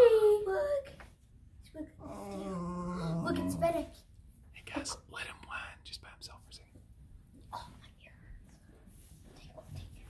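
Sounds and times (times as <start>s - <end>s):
person whispering: 4.6s - 6.8s.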